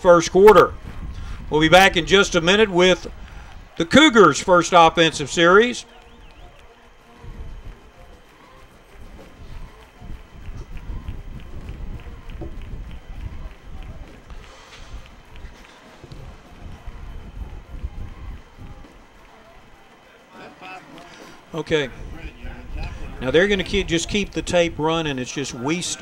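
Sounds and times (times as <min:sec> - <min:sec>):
faint distant voices: 0:00.0 - 0:26.0.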